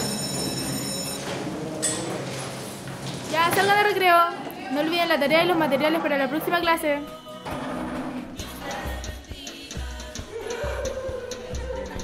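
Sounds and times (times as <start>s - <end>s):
electric school bell ringing: 0.0s - 1.4s.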